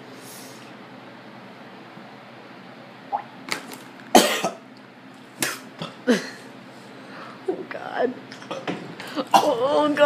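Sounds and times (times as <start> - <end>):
man coughing and spluttering: 4.2 - 4.6.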